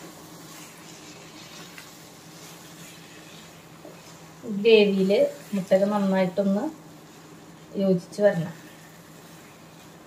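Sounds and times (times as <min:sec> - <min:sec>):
gravy simmering in a pan: 0:00.0 - 0:10.0.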